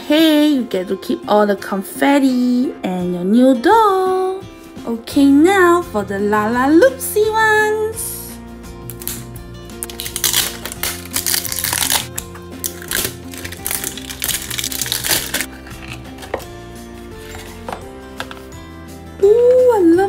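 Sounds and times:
background music with steady beat: 0.0s - 20.0s
plastic shrink-wrap crinkling: 9.8s - 16.4s.

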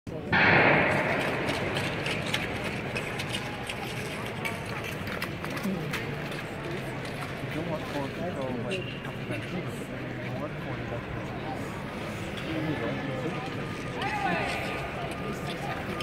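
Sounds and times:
faint voices in arena: 0.1s - 16.0s.

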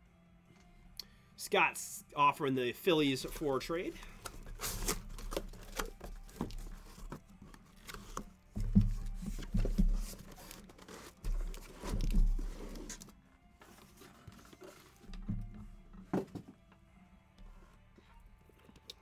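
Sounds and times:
cardboard scraping and rustling: 3.2s - 16.5s
dull thumps of boxes: 8.5s - 13.0s.

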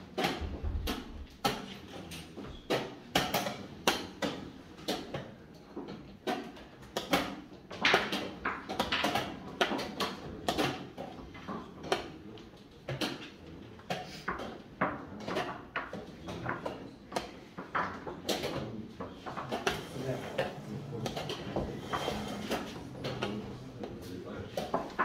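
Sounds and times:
chess pieces clacking on wooden board: 1.4s - 12.1s, 12.8s - 23.6s.

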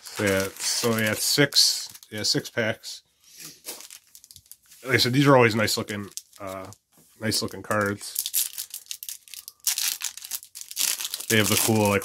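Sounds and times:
foil wrapper crinkling: 0.0s - 2.4s, 3.6s - 6.8s, 7.4s - 12.0s
man speaking: 0.1s - 3.0s, 4.8s - 8.2s, 11.3s - 12.0s.

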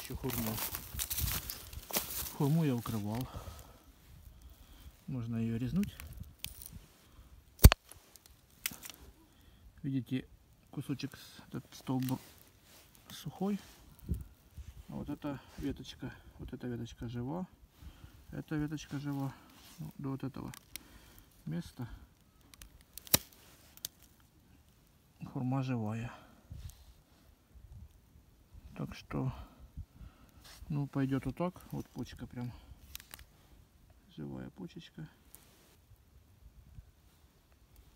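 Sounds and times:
pruning shears snipping stem: 7.6s - 9.0s, 22.6s - 24.0s.

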